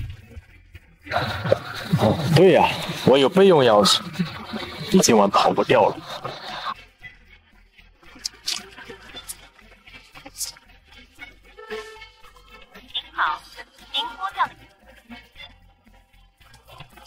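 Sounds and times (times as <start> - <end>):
soft background music: 0.0 - 17.0
person speaking: 1.1 - 6.7.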